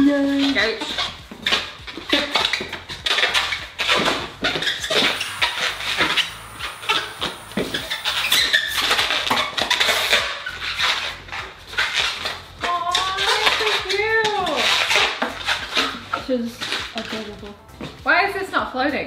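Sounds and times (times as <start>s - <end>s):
balloons squeaking and rubbing: 0.4s - 17.3s
balloon squeal: 2.4s - 12.4s.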